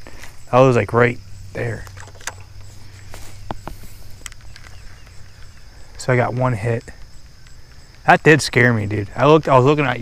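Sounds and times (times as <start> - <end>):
high insect trill: 0.0 - 10.0
faint light clicks: 3.4 - 8.0.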